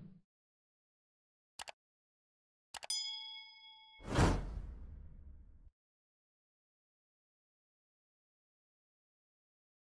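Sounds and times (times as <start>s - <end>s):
bell-like ding: 2.8s - 4.3s.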